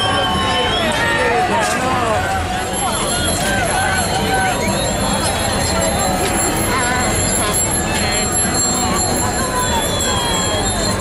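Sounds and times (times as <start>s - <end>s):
crowd talking and calling out: 0.0s - 11.0s
low street rumble: 0.0s - 11.0s.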